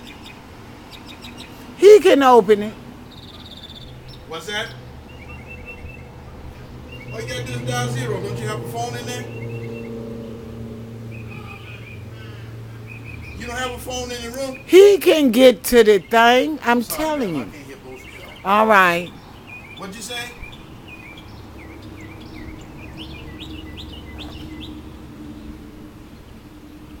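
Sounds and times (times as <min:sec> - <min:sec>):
bird chirping: 0:00.0 - 0:27.0.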